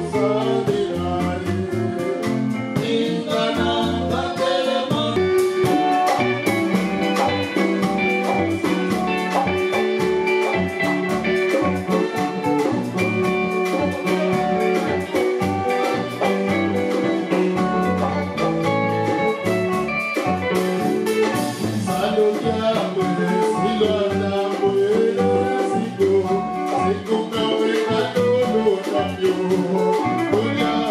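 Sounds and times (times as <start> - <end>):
man singing into microphone: 0.0 - 5.2, 21.8 - 30.9
drum kit beat: 0.0 - 30.9
electric guitar: 0.0 - 30.9.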